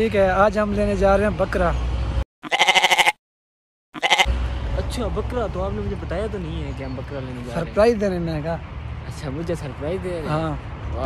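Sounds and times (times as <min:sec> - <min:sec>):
goat bleating: 0:02.4 - 0:03.2, 0:04.0 - 0:04.3.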